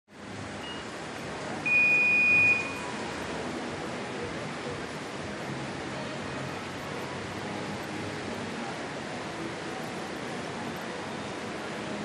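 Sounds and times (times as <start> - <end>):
rushing white water: 0.1 - 12.0
electronic start beep: 1.6 - 2.8.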